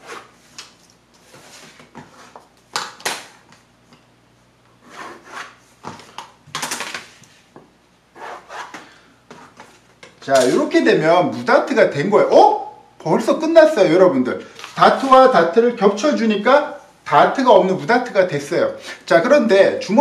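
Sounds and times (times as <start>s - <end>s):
pencil scratching on paper: 8.2s - 8.7s.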